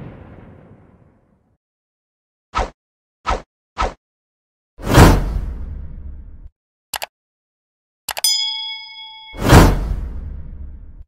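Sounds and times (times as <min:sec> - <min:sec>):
whoosh with deep rumble: 0:09.4 - 0:11.0.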